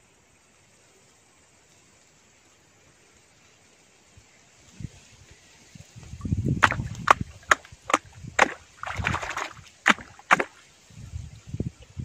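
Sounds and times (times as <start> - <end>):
hand splashing muddy water: 6.6 - 10.7.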